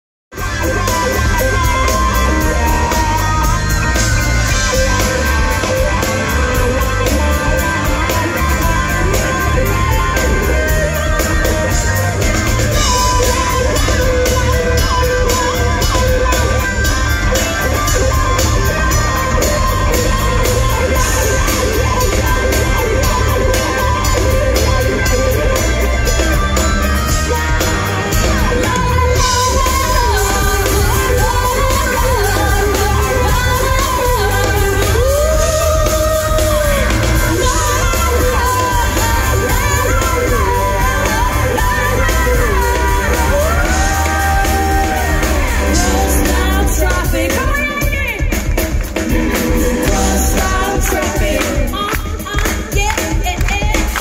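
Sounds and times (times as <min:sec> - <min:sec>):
electric guitar lead with bent notes: 0:00.3 - 0:54.0
heavy bass and drums: 0:00.3 - 0:54.0
woman singing: 0:00.4 - 0:54.0.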